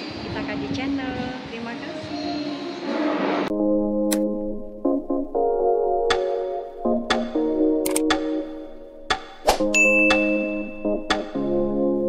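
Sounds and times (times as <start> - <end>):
electronic background music: 3.4 - 12.0
sharp click: 4.1 - 4.3, 6.1 - 6.3, 7.1 - 8.5, 9.1 - 10.4, 11.1 - 11.4
bright bell-like ding: 9.7 - 11.2.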